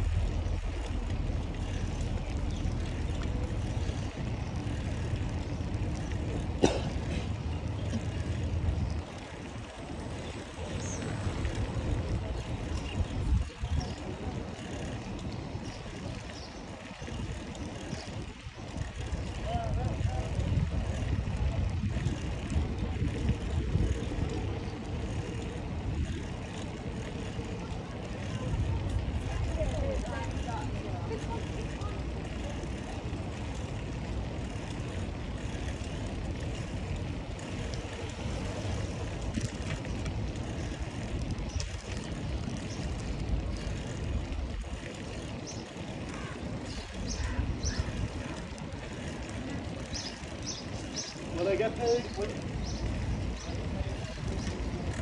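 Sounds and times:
bicycle tyres rolling on bricks: 0:00.0 - 0:55.0
wind buffeting microphone: 0:00.0 - 0:55.0.

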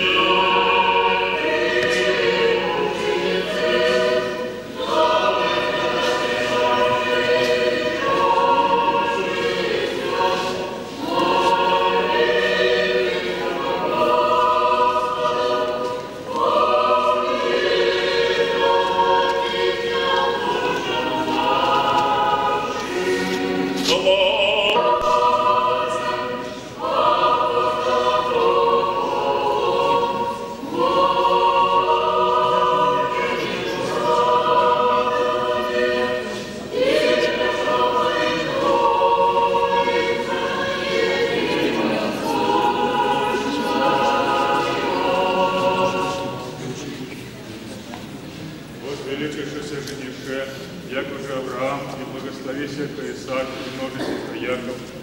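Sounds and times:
choir singing unaccompanied: 0:00.0 - 0:55.0.

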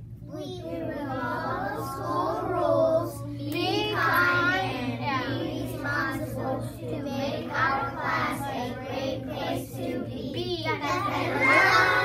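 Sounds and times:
steady low hum: 0:00.0 - 0:12.0
children singing in unison: 0:11.0 - 0:12.0.

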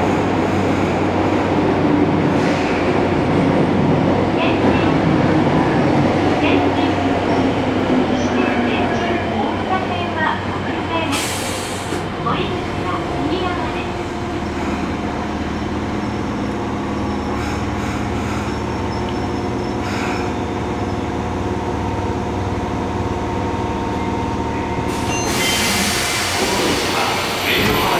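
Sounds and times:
train electrical hum and whine: 0:04.3 - 0:27.9
air hiss of doors opening: 0:11.1 - 0:12.0, 0:24.9 - 0:27.0.

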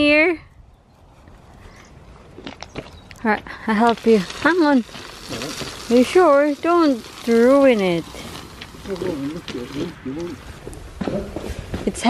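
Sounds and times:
people talking: 0:08.8 - 0:10.4.

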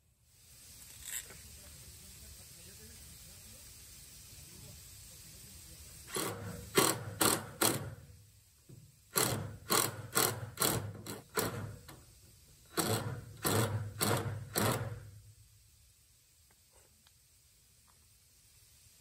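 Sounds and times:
cordless driver driving screws: 0:06.1 - 0:08.0, 0:09.1 - 0:11.9, 0:12.7 - 0:15.0.

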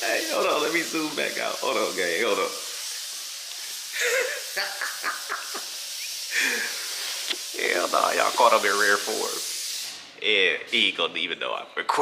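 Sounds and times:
steady hiss: 0:00.0 - 0:12.0
man laughing: 0:03.9 - 0:06.8.

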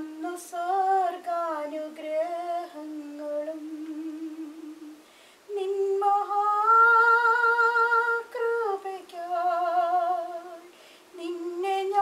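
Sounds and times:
person singing slow melody: 0:00.0 - 0:12.0.

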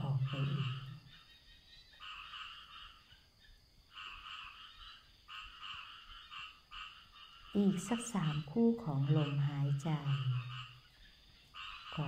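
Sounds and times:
frogs croaking: 0:00.0 - 0:12.0.

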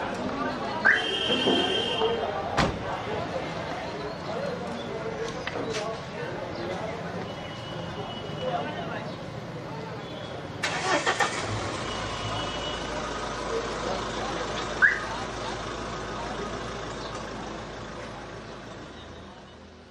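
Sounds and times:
car engine starting and idling: 0:10.6 - 0:18.6.

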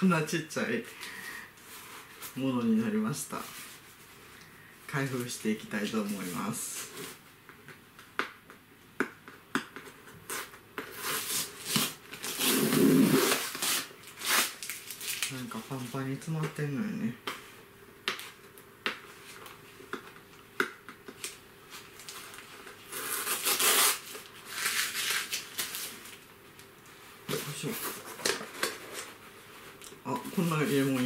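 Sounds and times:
packaging rustling and scraping: 0:21.2 - 0:26.2, 0:27.3 - 0:31.0.

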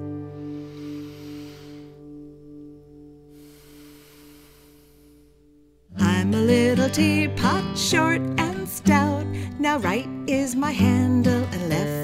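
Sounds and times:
person breathing: 0:00.2 - 0:05.8.

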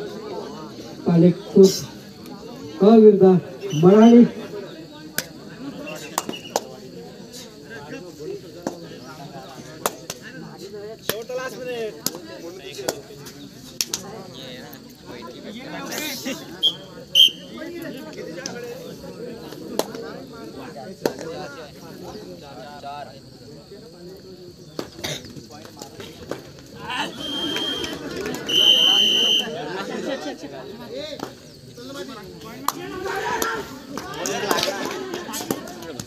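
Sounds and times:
crowd chatter and shouts: 0:00.0 - 0:36.0
sharp slaps or claps: 0:06.0 - 0:06.8, 0:09.8 - 0:10.2, 0:13.8 - 0:14.1, 0:32.6 - 0:36.0
referee's whistle blast: 0:16.6 - 0:17.6, 0:27.0 - 0:29.6
people shouting: 0:26.8 - 0:29.8, 0:32.8 - 0:35.4.

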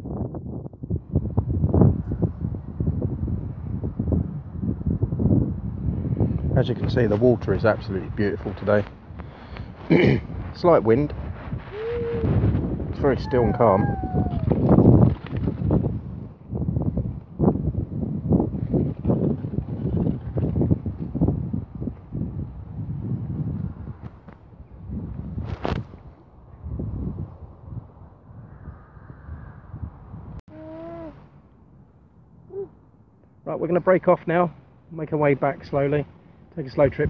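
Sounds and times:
wind buffeting microphone: 0:00.0 - 0:31.2, 0:32.5 - 0:37.0.

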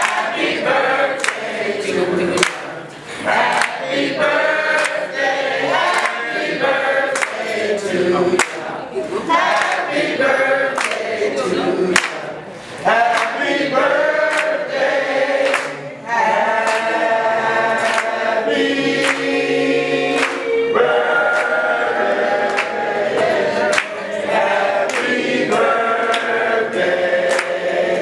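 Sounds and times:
hand claps: 0:00.0 - 0:00.3, 0:01.2 - 0:01.5, 0:02.4 - 0:02.7, 0:03.5 - 0:03.9, 0:04.8 - 0:05.0, 0:05.8 - 0:06.2, 0:07.1 - 0:07.6, 0:08.4 - 0:08.7, 0:09.5 - 0:09.9, 0:10.8 - 0:11.1, 0:11.9 - 0:12.2, 0:13.0 - 0:13.5, 0:14.2 - 0:14.6, 0:15.4 - 0:15.8, 0:16.6 - 0:17.0, 0:17.7 - 0:18.2, 0:19.0 - 0:19.4, 0:20.1 - 0:20.6, 0:21.3 - 0:21.6, 0:22.4 - 0:24.0, 0:24.8 - 0:28.0
women singing together: 0:00.0 - 0:28.0.

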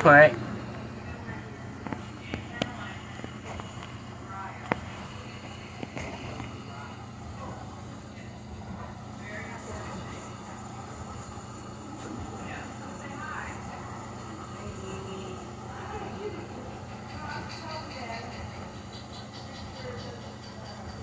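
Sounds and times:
faint voices: 0:00.0 - 0:21.0
steady low hum: 0:00.0 - 0:21.0.

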